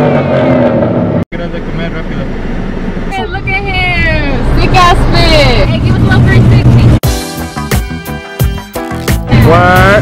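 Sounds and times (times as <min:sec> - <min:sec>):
car interior rumble: 0:00.6 - 0:07.0.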